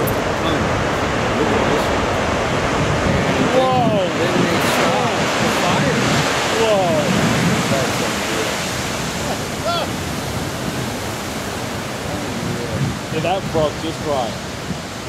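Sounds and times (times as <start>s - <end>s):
surf breaking on rocks: 0.0s - 15.0s.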